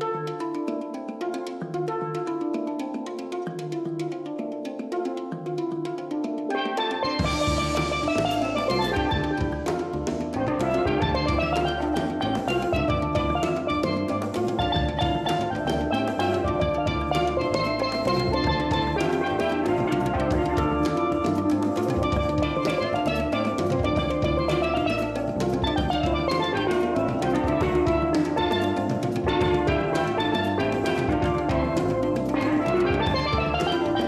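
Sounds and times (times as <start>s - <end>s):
drums and percussion beat: 0.0s - 34.0s
handpan ringing tones: 0.0s - 34.0s
steel pan notes: 6.5s - 34.0s.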